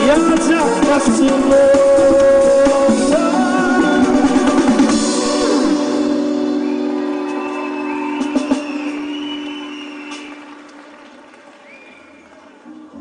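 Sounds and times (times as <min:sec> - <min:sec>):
high whistles: 0:06.5 - 0:10.7, 0:11.6 - 0:12.4.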